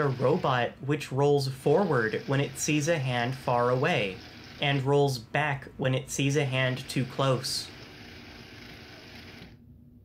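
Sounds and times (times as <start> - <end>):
small gear motors whirring: 0.0 - 0.7, 1.7 - 5.0, 6.7 - 9.6.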